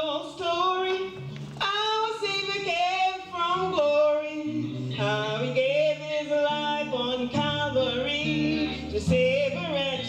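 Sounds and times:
man singing a hymn: 0.0s - 10.0s.

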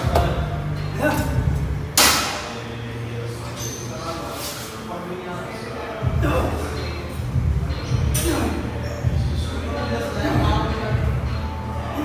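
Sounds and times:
low music: 0.0s - 12.0s.

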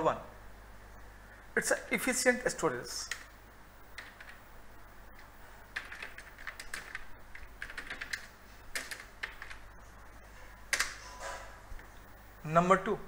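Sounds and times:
typing on computer keyboard: 3.0s - 3.3s, 4.0s - 4.4s, 5.8s - 9.6s, 10.7s - 11.0s.

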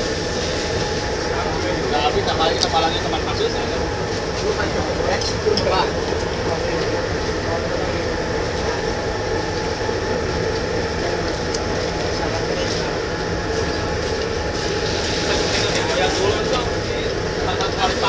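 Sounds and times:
engine drone: 0.0s - 18.0s
people talking: 0.0s - 18.0s.

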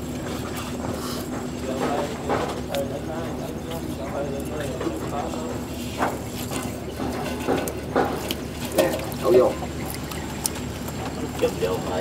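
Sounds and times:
water dripping and splashing: 7.4s - 12.0s.

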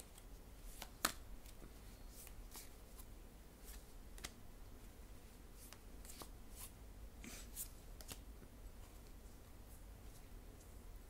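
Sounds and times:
cards being shuffled by hand: 7.5s - 9.2s.

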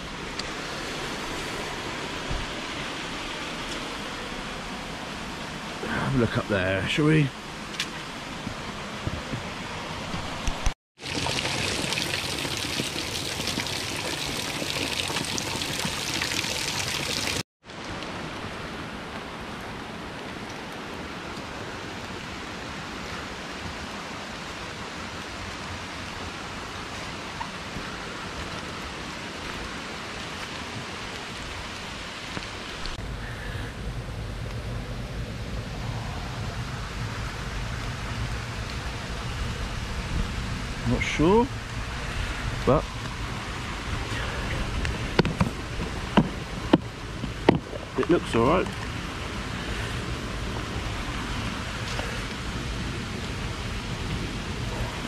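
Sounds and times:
stream flowing over boulders: 0.0s - 33.0s, 35.8s - 55.0s
waterfall trickling onto rocks: 10.1s - 33.0s, 37.0s - 55.0s
low rumble: 32.8s - 40.9s.

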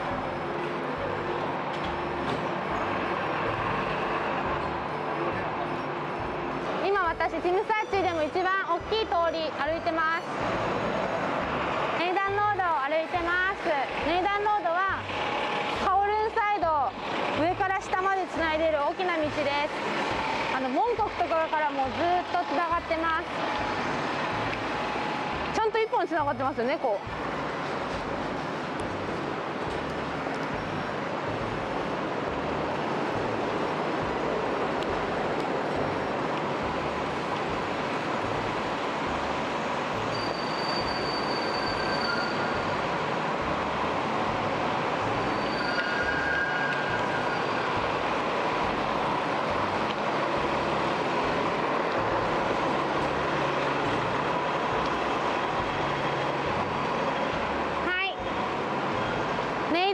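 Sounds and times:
city traffic din: 0.0s - 59.9s
high squeals: 40.0s - 42.8s, 45.2s - 48.0s.

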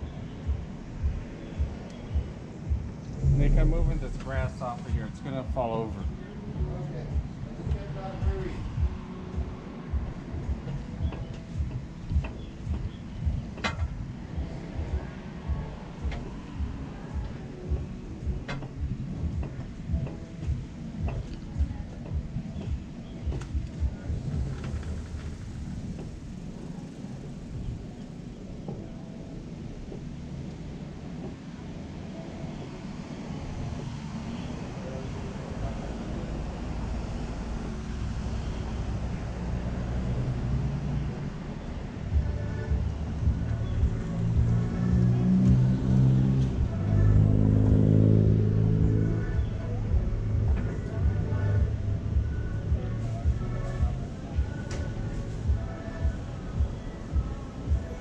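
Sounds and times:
street traffic: 0.0s - 58.0s
vehicle engine drone: 0.0s - 58.0s.

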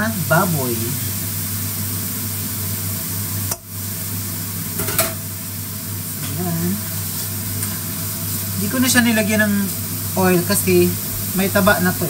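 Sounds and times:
meat sizzling in a pan: 0.0s - 12.0s.

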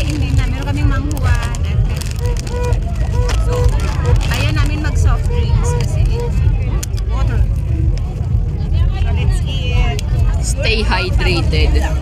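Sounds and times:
low rumble: 0.0s - 12.0s
people talking: 0.0s - 12.0s.

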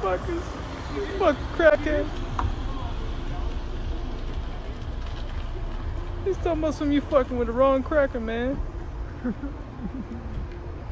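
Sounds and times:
low outdoor rumble: 0.0s - 10.9s.

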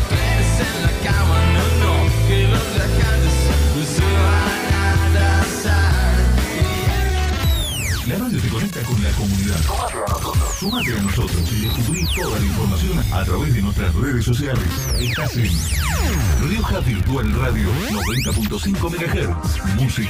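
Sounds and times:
electronic music with steady beat: 0.0s - 20.0s.

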